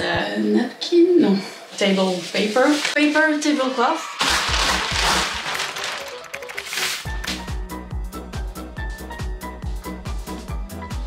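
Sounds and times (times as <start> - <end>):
paper sheet rustling: 2.2 - 7.4
background music with beat: 6.4 - 11.0.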